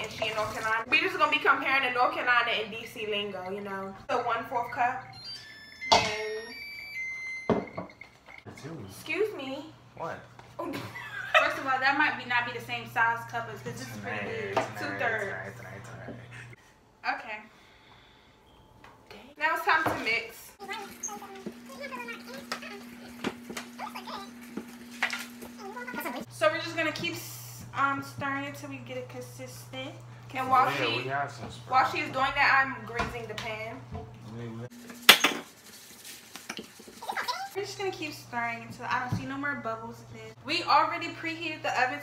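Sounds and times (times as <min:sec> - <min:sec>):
faint high ringing tones: 0:02.8 - 0:08.4, 0:18.1 - 0:19.2
metal scraping squeaks: 0:04.4 - 0:08.5.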